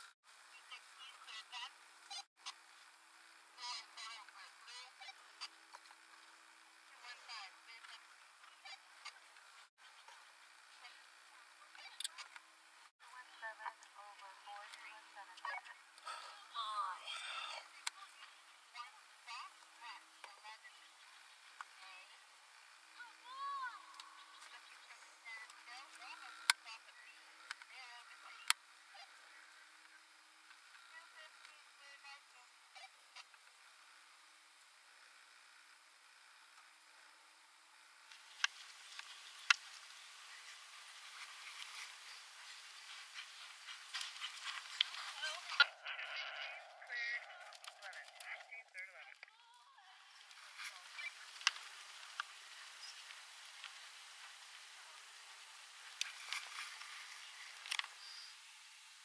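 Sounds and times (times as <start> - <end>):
low steady hum: 0.0 - 59.0
faint background hiss: 46.5 - 59.0.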